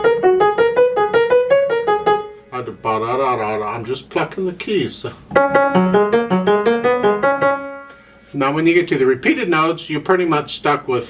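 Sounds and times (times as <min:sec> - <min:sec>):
piano staccato notes: 0:00.0 - 0:02.4, 0:05.3 - 0:08.1.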